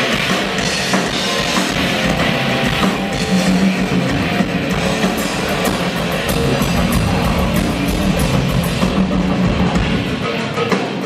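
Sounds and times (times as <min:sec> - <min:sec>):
rock drum solo: 0:00.0 - 0:11.0.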